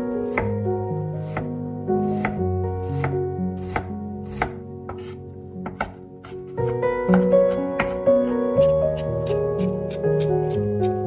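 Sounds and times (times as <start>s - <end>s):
knife chopping on wooden board: 0.3s - 0.6s, 1.2s - 1.5s, 2.1s - 8.0s, 8.6s - 11.0s.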